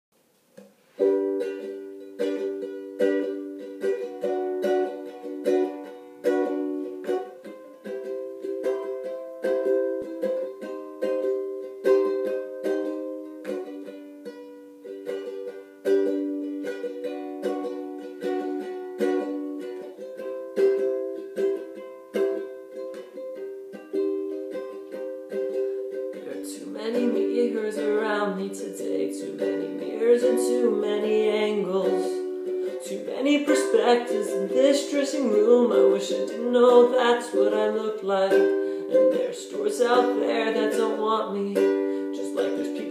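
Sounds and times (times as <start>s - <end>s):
ukulele strumming chords: 0.2s - 42.9s.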